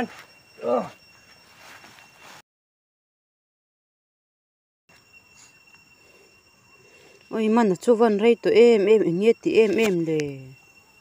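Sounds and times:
steady high thin tone: 0:00.0 - 0:02.4, 0:04.9 - 0:11.0
scuffle: 0:01.4 - 0:02.4.

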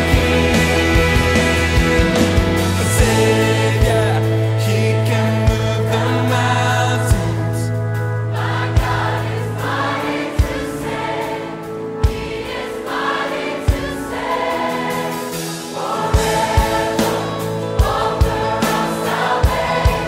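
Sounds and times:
choir singing gospel song: 0:00.0 - 0:20.0
sustained backing chords: 0:00.0 - 0:20.0.

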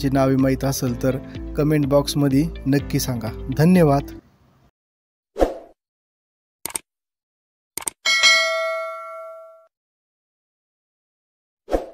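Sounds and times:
notification bell ding: 0:08.1 - 0:09.7.

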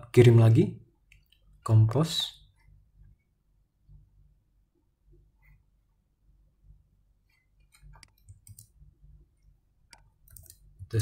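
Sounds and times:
mouse and keyboard clicks: 0:07.6 - 0:08.8, 0:09.9 - 0:10.8.

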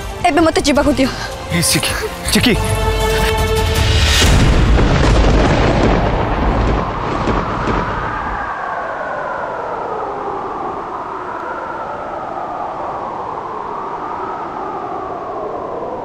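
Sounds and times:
synthesised drone: 0:00.0 - 0:05.6
low boom hit: 0:03.7 - 0:08.4.

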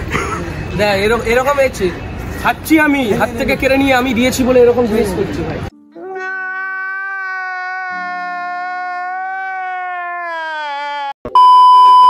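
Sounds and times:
loud single-pitch beep: 0:11.3 - 0:12.0.

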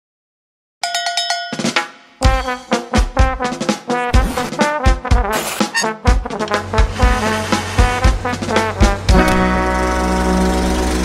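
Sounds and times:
ringing metallic percussion strikes: 0:00.8 - 0:02.9.

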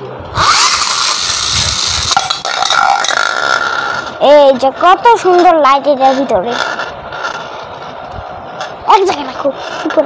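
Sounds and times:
spinning top launcher whir: 0:00.3 - 0:04.3.

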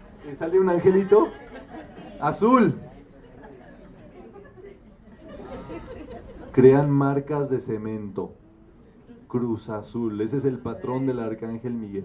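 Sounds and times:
people chatting quietly: 0:00.0 - 0:12.0.

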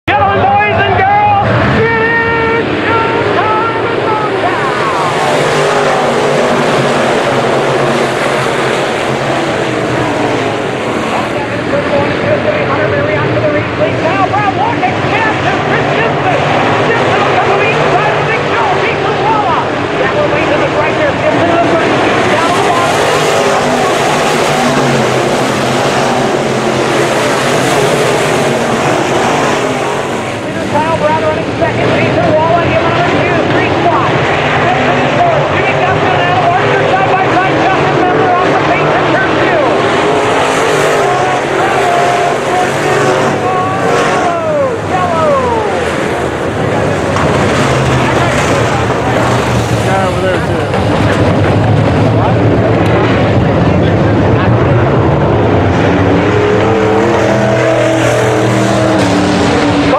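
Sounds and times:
race car engines roaring: 0:00.0 - 0:59.9
race car passing close: 0:00.1 - 0:59.9.

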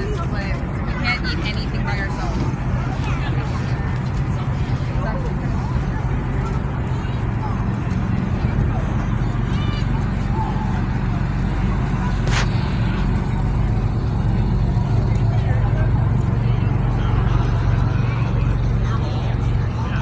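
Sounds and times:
indistinct voices: 0:00.0 - 0:20.0
low rumble: 0:00.0 - 0:20.0.

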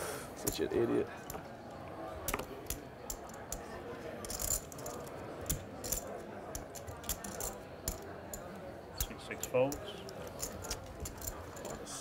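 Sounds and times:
steady room hiss: 0:00.0 - 0:12.0.

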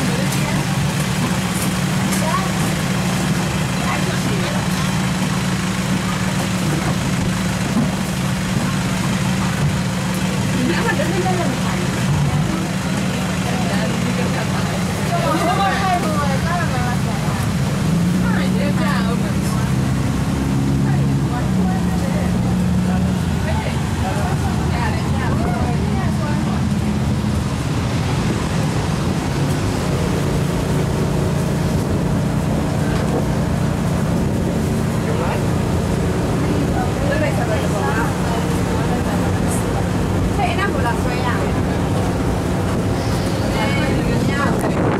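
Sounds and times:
bus engine droning: 0:00.0 - 0:44.9
passengers talking: 0:00.0 - 0:44.9.

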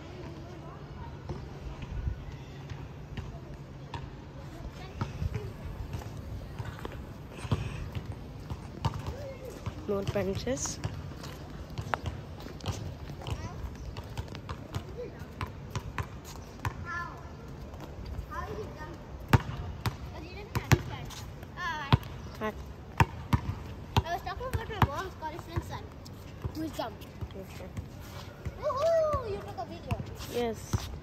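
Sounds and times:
basketballs bouncing on hard court: 0:04.8 - 0:11.1, 0:11.8 - 0:16.8, 0:19.3 - 0:21.0, 0:21.8 - 0:25.8
children calling: 0:28.5 - 0:30.2.

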